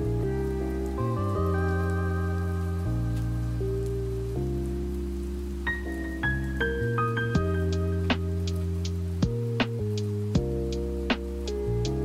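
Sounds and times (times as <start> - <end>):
faint rain-like hiss: 0.0 - 12.0
soft music of sustained chords: 0.0 - 12.0.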